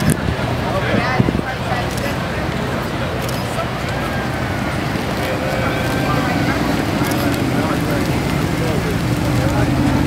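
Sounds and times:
background voices: 0:00.0 - 0:10.0
car engine at low revs: 0:03.7 - 0:10.0.

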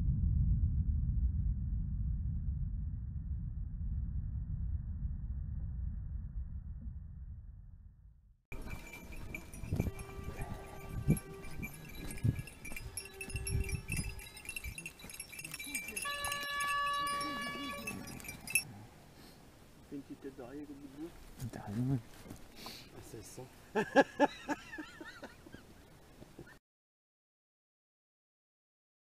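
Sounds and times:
high ringing tones: 0:08.5 - 0:18.7
dogs whining and yelping: 0:08.6 - 0:15.6, 0:17.1 - 0:18.6.

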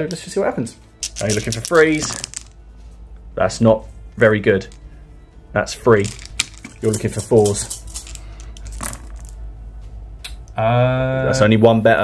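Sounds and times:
dice clattering in a padded tray: 0:01.0 - 0:02.6, 0:06.0 - 0:09.4.

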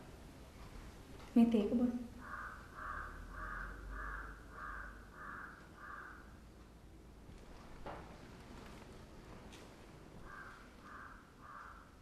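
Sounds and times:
crow cawing: 0:02.2 - 0:06.4, 0:10.2 - 0:12.0.

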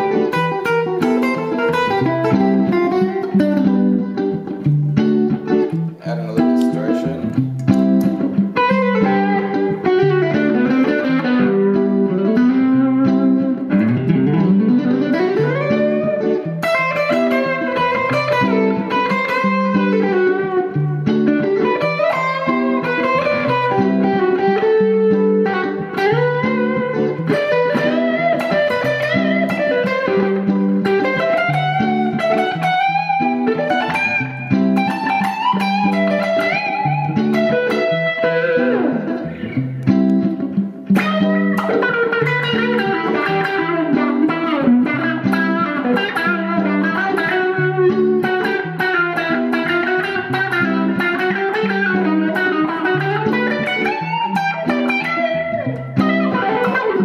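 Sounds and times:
electric guitar lead with bends: 0:00.0 - 0:57.0
looped electric guitar rhythm: 0:00.0 - 0:57.0.

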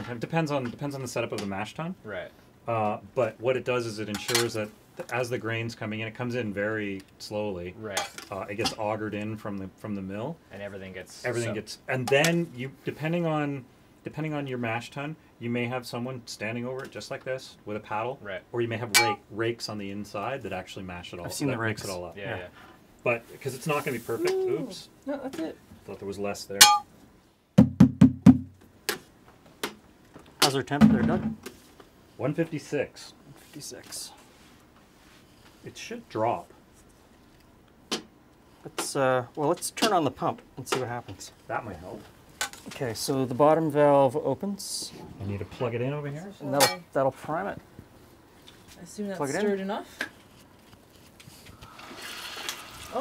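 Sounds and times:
pump and liquid flow hiss: 0:51.3 - 0:53.0.

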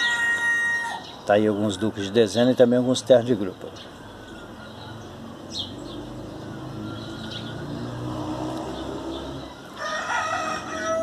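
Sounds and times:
faint bird chirps: 0:00.9 - 0:09.9
distant vehicle engine hum: 0:02.9 - 0:11.0.

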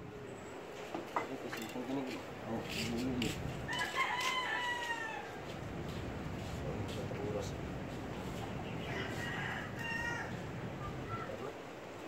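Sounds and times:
rooster crowing: 0:03.7 - 0:05.6, 0:08.6 - 0:10.6.

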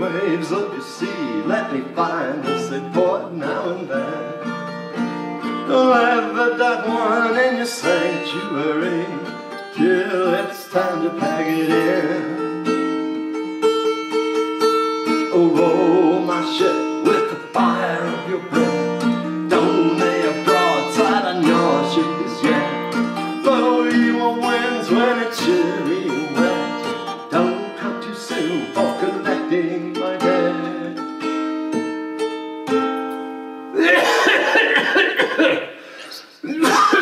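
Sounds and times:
acoustic guitar strumming: 0:00.0 - 0:35.6.

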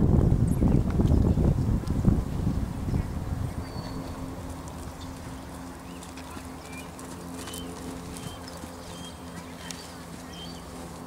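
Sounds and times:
horse hooves trotting on sand: 0:00.0 - 0:11.0
steady low hum: 0:00.0 - 0:11.0.

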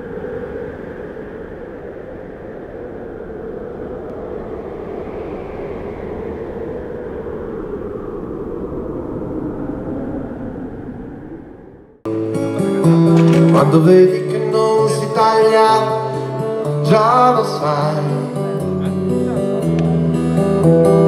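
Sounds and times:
steady rushing rumbling noise: 0:00.0 - 0:12.1.

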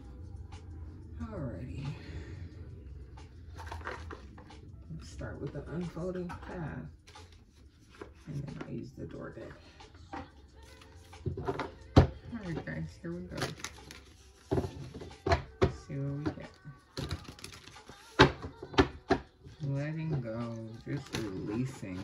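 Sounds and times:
person talking indistinctly: 0:04.8 - 0:07.0, 0:08.2 - 0:09.8, 0:11.5 - 0:13.9, 0:14.5 - 0:17.3, 0:19.6 - 0:22.0.

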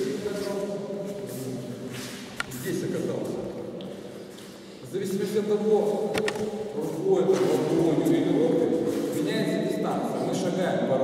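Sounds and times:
man talking: 0:00.0 - 0:03.9, 0:04.8 - 0:11.0.

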